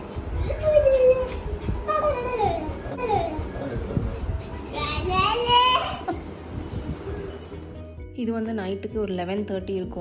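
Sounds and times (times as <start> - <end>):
young children playing: 0.3 - 6.4.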